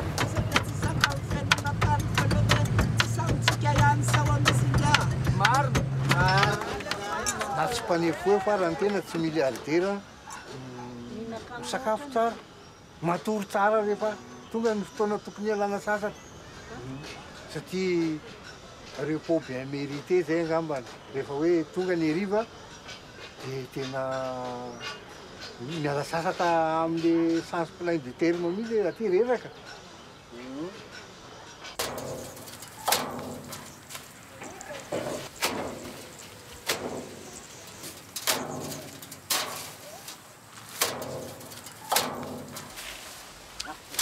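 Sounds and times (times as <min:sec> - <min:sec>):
sharp knock: 0:34.9 - 0:40.0, 0:40.7 - 0:42.9.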